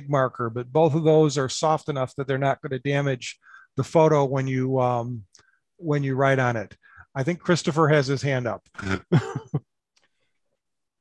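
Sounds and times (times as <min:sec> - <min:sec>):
man chuckling: 0:08.8 - 0:09.6.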